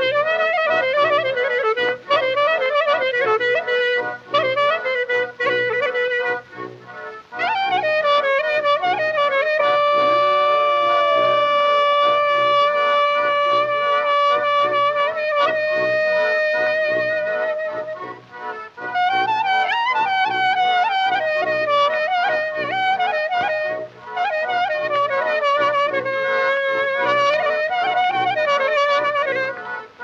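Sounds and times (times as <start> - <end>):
wind instrument melody: 0.0 - 30.0.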